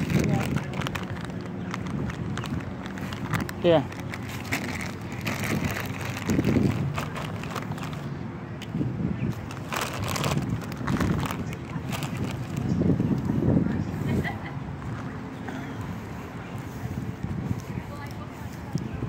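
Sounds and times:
footsteps crunching dry leaves: 0:00.0 - 0:08.2, 0:09.2 - 0:13.1.

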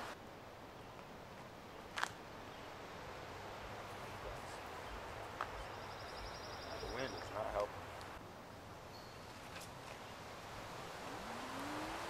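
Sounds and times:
outdoor background hiss: 0:00.0 - 0:12.0
distant vehicle accelerating: 0:10.2 - 0:12.0.

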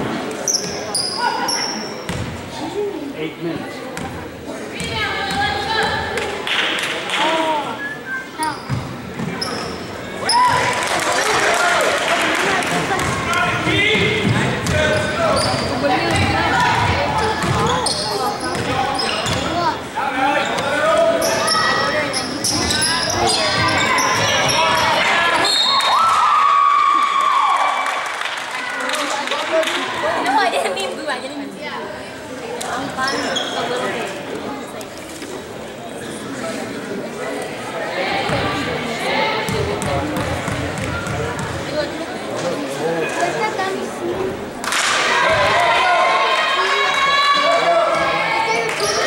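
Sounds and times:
shouting and chatter in gym: 0:00.0 - 0:49.0.

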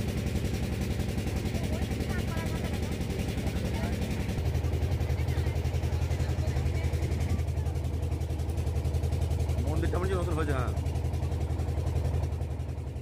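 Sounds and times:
boat engine low throb: 0:00.0 - 0:13.0.

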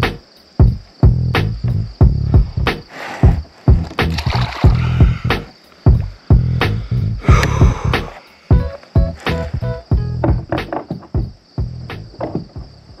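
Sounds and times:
music with punchy drum beat: 0:00.0 - 0:12.1.

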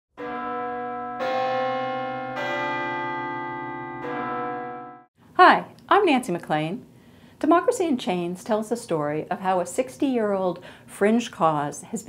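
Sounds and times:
church bells ringing: 0:00.2 - 0:05.1.

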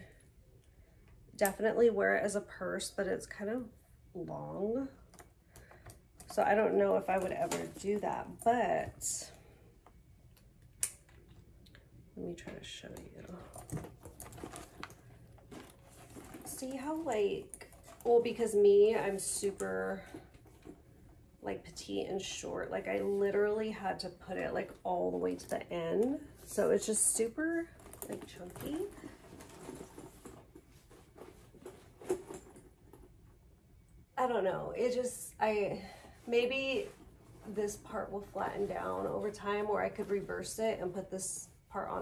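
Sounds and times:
backpack rustling: 0:13.6 - 0:18.3, 0:27.7 - 0:33.1.

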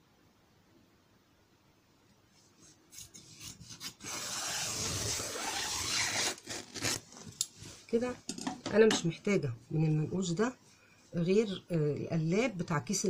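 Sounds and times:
fabric rubbing on table: 0:02.4 - 0:07.9.

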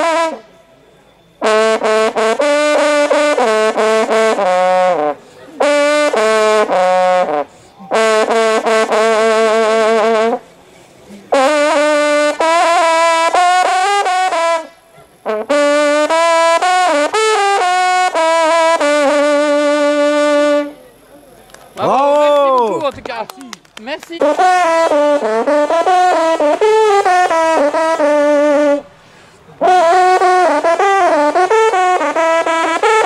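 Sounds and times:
hunting horn fanfare: 0:00.0 - 0:00.5, 0:01.4 - 0:10.5, 0:11.3 - 0:20.8, 0:24.2 - 0:28.9, 0:29.6 - 0:33.0.

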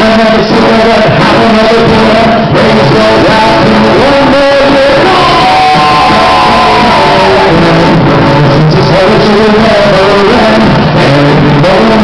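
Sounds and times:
acoustic guitar strummed: 0:00.0 - 0:12.0
man singing: 0:00.0 - 0:12.0.

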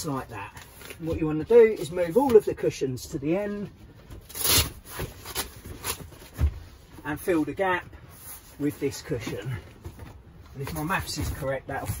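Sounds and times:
leather cushions knocking and rubbing: 0:09.1 - 0:12.0.

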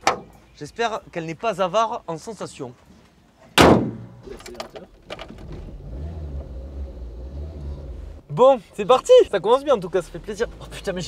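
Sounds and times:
car engine humming: 0:05.0 - 0:08.8, 0:09.4 - 0:11.0.

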